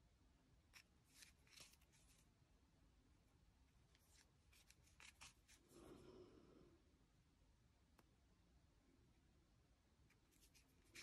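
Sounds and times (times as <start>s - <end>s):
soft yarn rustles: 0.7s - 2.4s, 3.7s - 6.3s, 10.0s - 11.0s.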